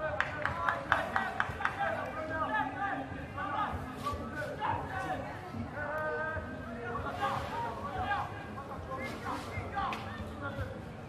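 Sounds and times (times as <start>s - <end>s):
background hubbub of chatter: 0.0s - 11.0s
voices talking and calling out: 0.0s - 11.0s.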